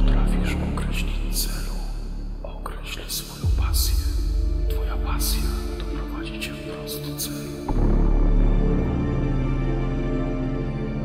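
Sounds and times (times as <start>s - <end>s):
deep bass tone: 0.0s - 6.9s, 7.7s - 10.9s.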